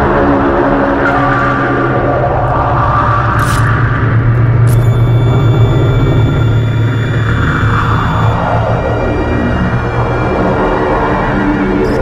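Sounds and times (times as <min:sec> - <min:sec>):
distorted electric guitar drone: 0:00.0 - 0:12.0
higher held guitar tone: 0:04.4 - 0:09.1.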